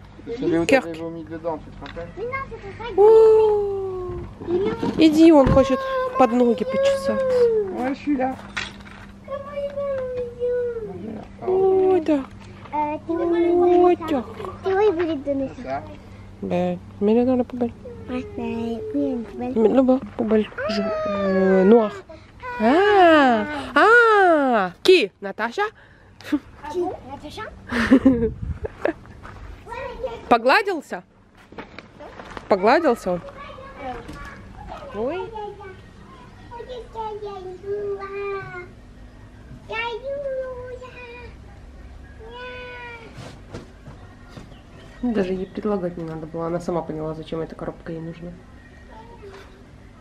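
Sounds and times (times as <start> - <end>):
people talking: 22.6 - 25.7.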